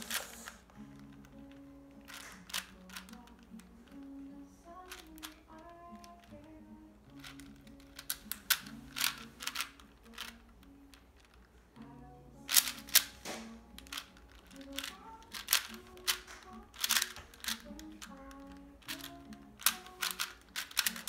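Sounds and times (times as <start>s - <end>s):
puzzle cube clicking: 0.0s - 11.6s, 12.4s - 21.0s
quiet melodic music: 0.0s - 21.0s.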